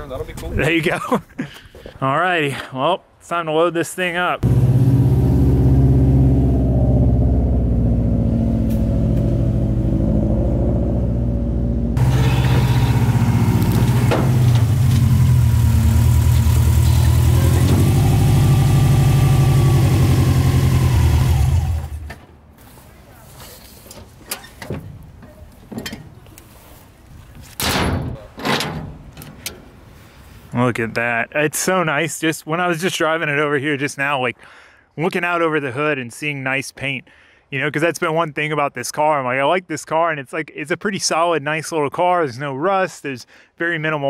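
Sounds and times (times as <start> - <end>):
car engine running: 4.4 - 22.1.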